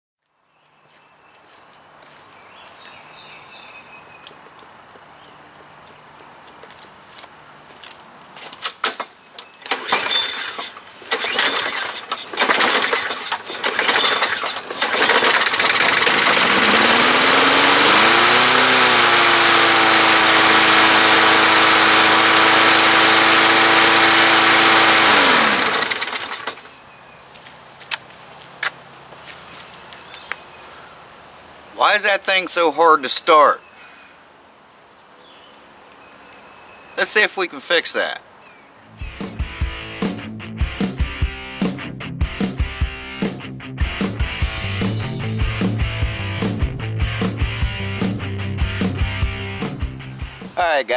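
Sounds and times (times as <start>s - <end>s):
mower pull starter: 8.6s - 26.7s
lawn mower engine running: 8.8s - 26.8s.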